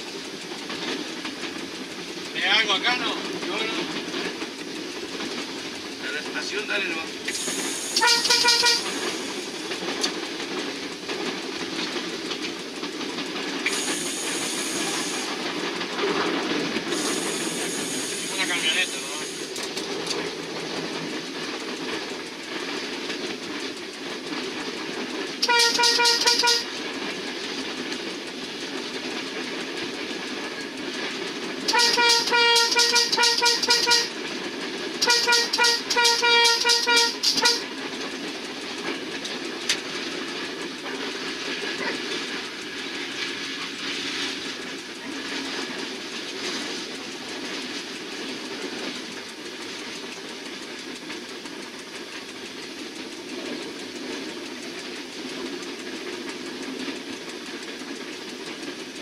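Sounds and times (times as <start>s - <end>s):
train rumbling on track: 0.0s - 59.0s
train horn blasts: 8.0s - 9.0s, 25.4s - 26.7s, 31.7s - 34.2s, 35.0s - 37.6s.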